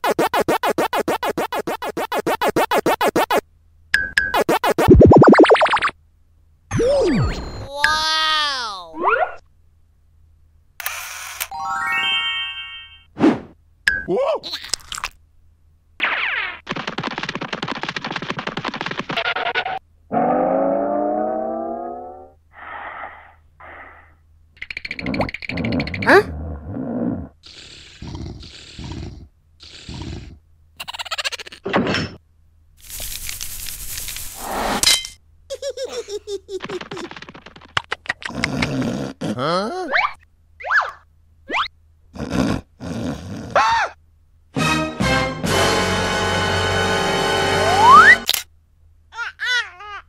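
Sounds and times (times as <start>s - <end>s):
cartoon voice rising ooh: 47.6s - 48.2s.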